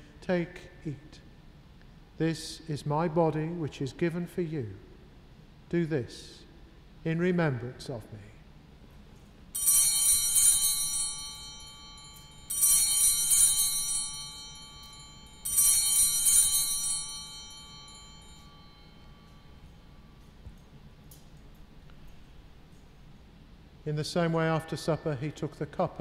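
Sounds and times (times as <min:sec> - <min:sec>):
altar bells jangling: 0:09.6 - 0:23.3.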